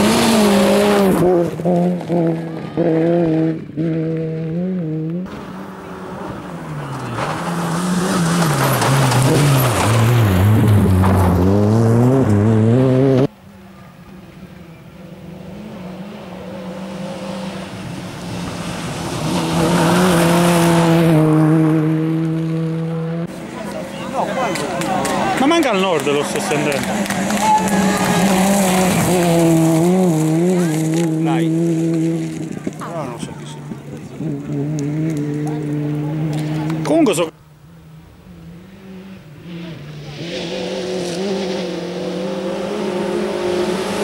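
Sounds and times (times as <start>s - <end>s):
rally car engine revving: 0.0s - 13.3s, 14.6s - 44.0s.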